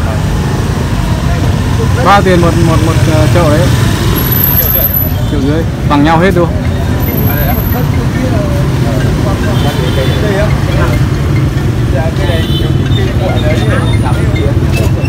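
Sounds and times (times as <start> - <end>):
people talking: 1.0 - 3.8, 5.2 - 11.3, 11.9 - 15.0.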